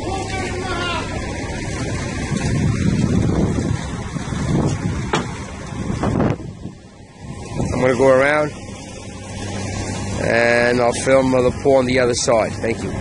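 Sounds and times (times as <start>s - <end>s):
diesel engine running: 0.0s - 13.0s
short sharp clunks: 5.1s - 5.4s.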